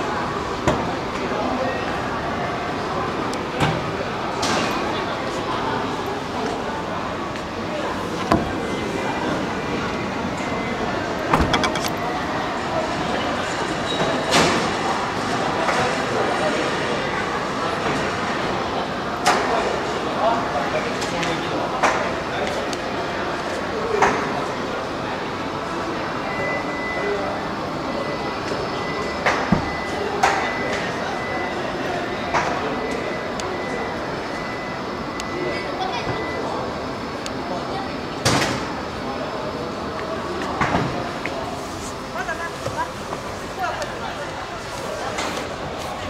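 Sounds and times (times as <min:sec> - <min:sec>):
busy showroom hall background: 0:00.0 - 0:46.0.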